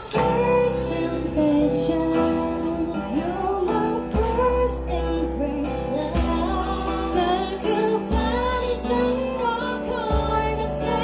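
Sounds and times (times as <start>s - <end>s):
keyboard: 0.0s - 11.0s
young women singing: 0.0s - 11.0s.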